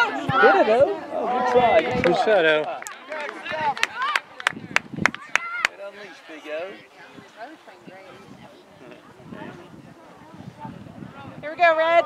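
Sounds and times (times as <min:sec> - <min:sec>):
voices shouting outdoors: 0:00.0 - 0:12.0
sharp hand claps: 0:02.0 - 0:05.8.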